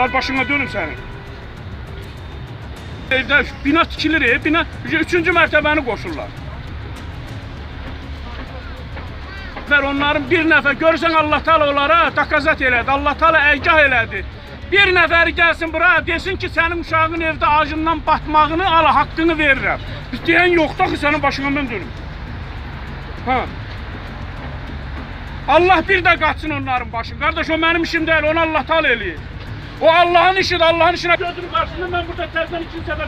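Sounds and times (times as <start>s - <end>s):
passing cars rumble: 0.0s - 33.0s
faint voices: 3.1s - 22.0s.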